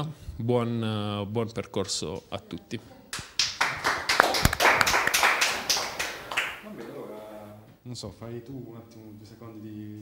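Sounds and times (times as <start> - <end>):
audience applauding: 3.4 - 6.7.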